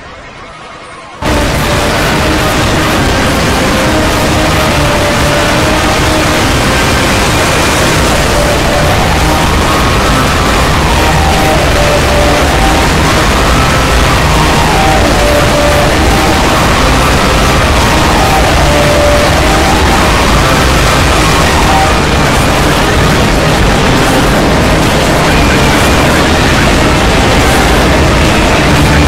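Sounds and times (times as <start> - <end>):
many cartoon soundtracks overlapping: 0.0 - 29.0.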